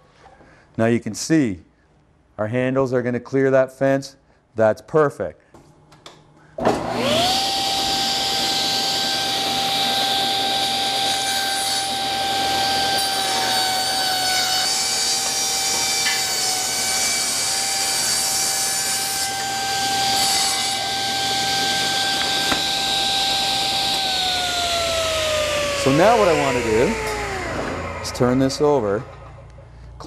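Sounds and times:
saw blade winding down: 6.7s - 18.6s, 19.2s - 29.6s
saw blade cutting wood: 6.7s - 29.5s
table saw running: 6.7s - 29.7s.

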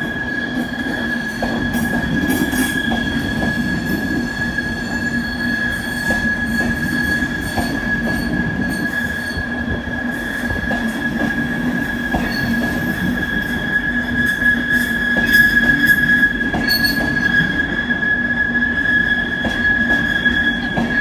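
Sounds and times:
train whine: 0.0s - 21.0s.

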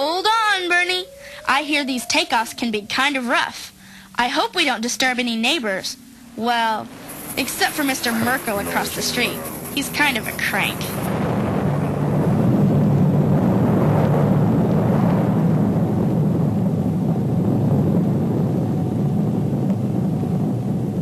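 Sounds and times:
rocket engine rumble: 0.0s - 21.0s.

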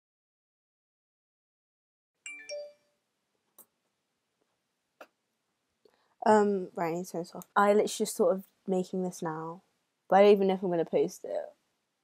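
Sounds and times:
two-note ding-dong chime: 2.3s - 2.8s.

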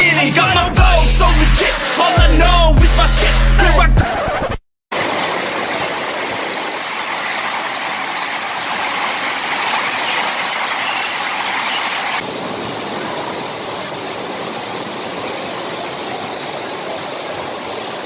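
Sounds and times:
rain on a roof: 4.9s - 18.0s.

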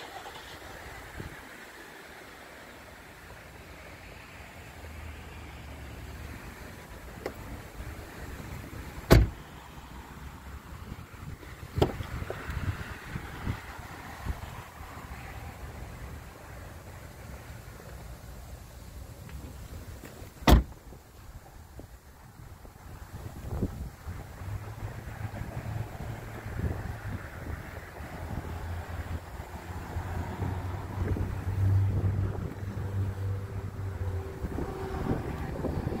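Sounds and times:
car door shutting: 9.1s - 9.4s, 11.8s - 12.3s, 20.0s - 20.8s
wind buffeting microphone: 21.7s - 36.0s.

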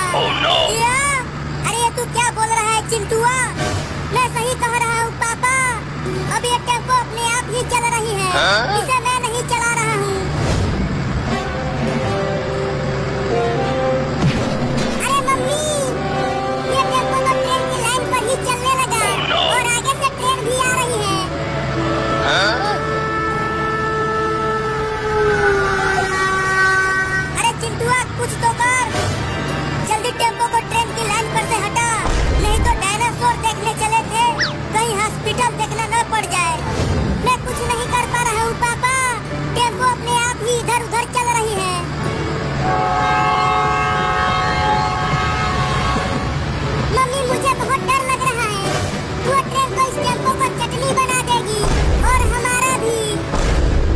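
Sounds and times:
voices: 0.0s - 10.3s, 15.0s - 21.4s, 25.8s - 28.9s, 29.6s - 36.6s, 46.9s - 53.3s
train rumbling on rails: 0.0s - 22.2s, 41.8s - 53.9s
background music: 1.7s - 53.9s
train horn chord: 42.6s - 46.5s.

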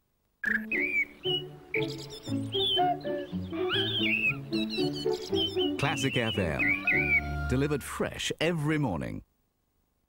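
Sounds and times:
chirping birdsong: 0.4s - 7.8s
light classical tune: 0.7s - 7.6s.

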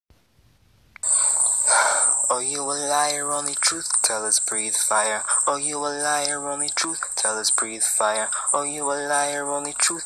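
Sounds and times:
loud hiss with high whine: 1.0s - 10.0s.

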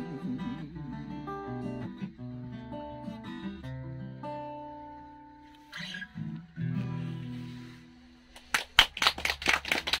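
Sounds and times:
small audience clapping: 8.3s - 10.0s.

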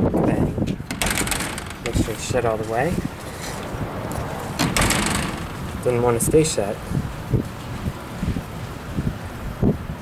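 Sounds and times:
metal door knocking and rattling: 0.8s - 2.6s, 4.6s - 6.3s
metal door click: 0.9s - 2.5s, 4.6s - 6.2s.

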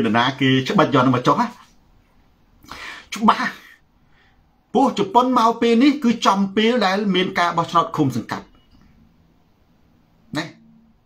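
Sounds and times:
man speaking drawn-out syllable: 10.3s - 10.6s.

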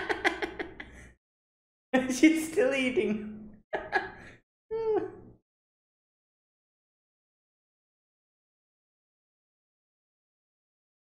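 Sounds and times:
man laughing: 0.0s - 0.9s, 3.8s - 5.0s.

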